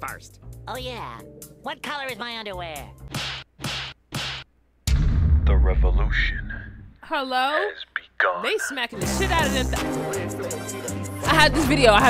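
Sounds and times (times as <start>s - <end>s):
deep bass boom: 4.9s - 7.0s.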